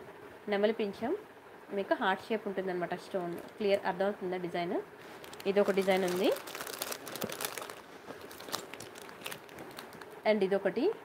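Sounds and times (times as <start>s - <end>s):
plastic packet crinkling: 3.3s - 3.8s, 5.0s - 10.2s.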